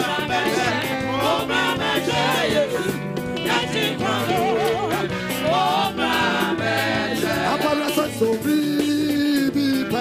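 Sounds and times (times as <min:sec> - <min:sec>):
woman singing lead: 0:00.0 - 0:05.2
choir singing: 0:00.0 - 0:08.2
band accompaniment: 0:00.0 - 0:10.0.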